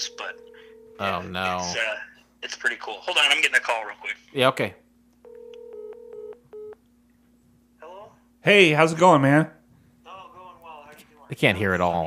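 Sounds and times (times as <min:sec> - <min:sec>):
telephone tone beeps: 0:05.3 - 0:06.8.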